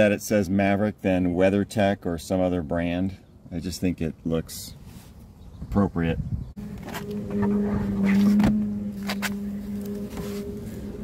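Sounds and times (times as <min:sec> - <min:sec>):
engine humming: 0:06.4 - 0:11.0.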